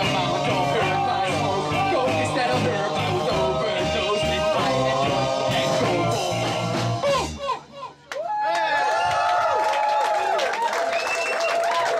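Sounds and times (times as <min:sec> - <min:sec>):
live rock band playing: 0:00.0 - 0:07.5
repeating bass line: 0:00.0 - 0:07.6.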